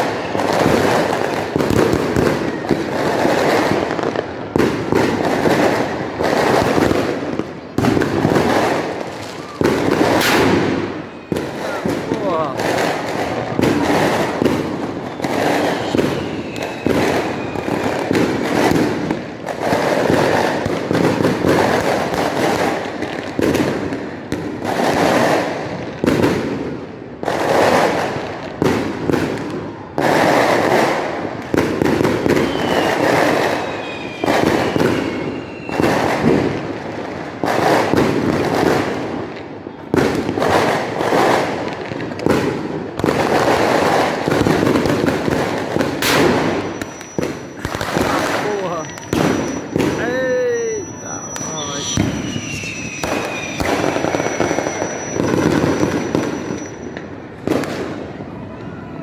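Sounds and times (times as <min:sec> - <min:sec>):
falling firework whistle: 0:00.0 - 0:19.0, 0:27.6 - 0:36.6, 0:39.6 - 0:59.0
fireworks bangs and crackling: 0:00.0 - 0:59.0.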